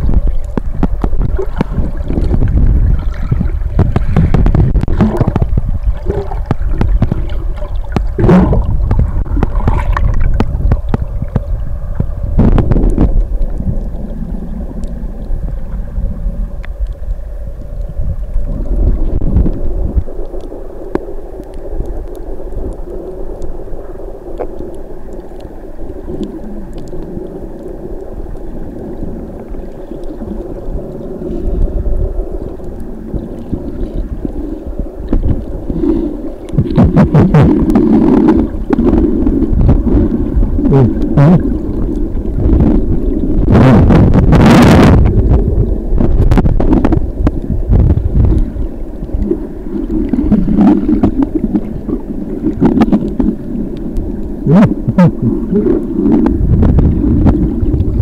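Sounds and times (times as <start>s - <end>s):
swimmer kicking underwater: 0.0s - 13.2s
muffled underwater rumble: 0.0s - 58.0s.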